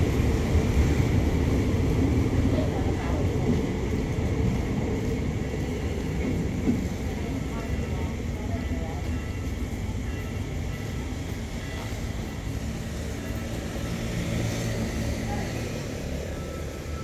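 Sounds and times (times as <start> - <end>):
train rumbling on track: 0.0 - 17.0
people's voices: 2.0 - 17.0.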